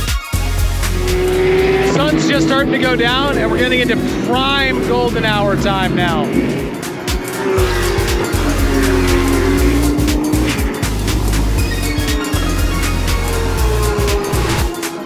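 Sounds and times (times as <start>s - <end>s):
music with heavy bass: 0.0s - 15.0s
race car engines passing: 0.5s - 15.0s.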